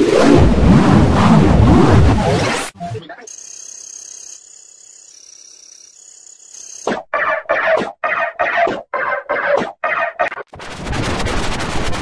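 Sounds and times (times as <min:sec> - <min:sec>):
person speaking: 0:02.8 - 0:03.5
steady high-pitched tone: 0:02.8 - 0:06.9.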